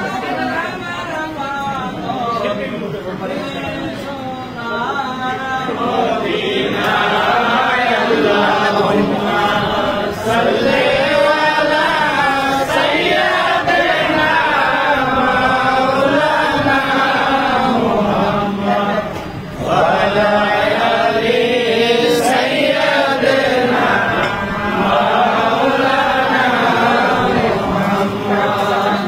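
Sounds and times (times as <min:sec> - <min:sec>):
voices chanting: 0:00.0 - 0:29.0.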